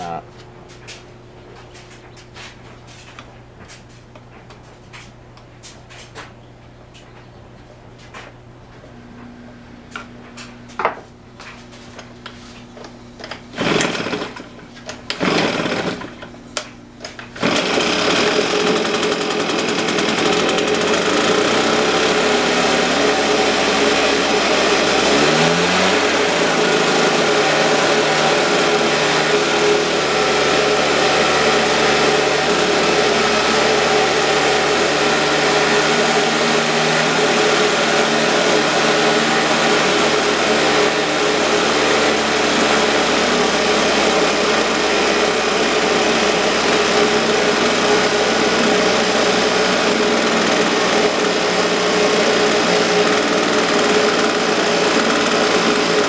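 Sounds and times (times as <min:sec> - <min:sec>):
leaf blower engine idling: 0:12.8 - 0:56.0.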